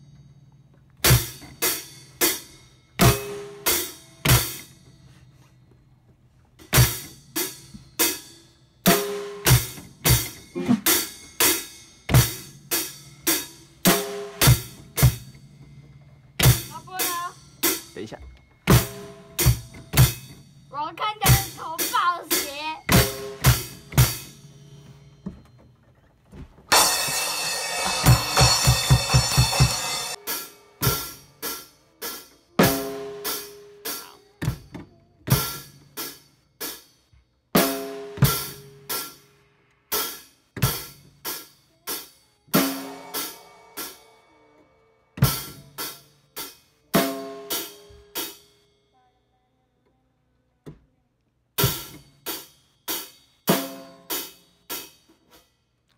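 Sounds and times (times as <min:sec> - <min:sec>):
fast roll of low drums: 0:26.7 - 0:30.2
drum kit stick strokes: 0:26.7 - 0:36.8.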